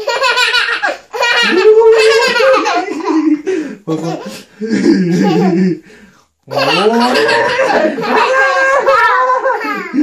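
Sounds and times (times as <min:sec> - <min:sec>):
young child laughing: 0:06.5 - 0:10.0.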